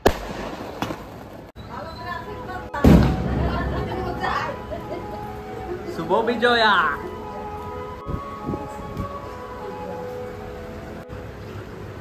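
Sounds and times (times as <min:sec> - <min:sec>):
firecracker bangs: 0:00.0 - 0:01.5, 0:02.8 - 0:04.5
voices: 0:01.6 - 0:11.8.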